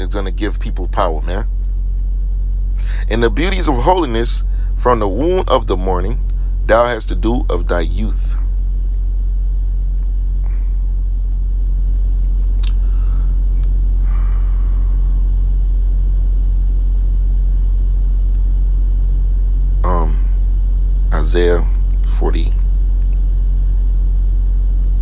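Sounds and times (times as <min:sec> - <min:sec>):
deep constant hum: 0:00.0 - 0:25.0
low rumble: 0:00.0 - 0:25.0
sharp click: 0:11.3 - 0:12.8.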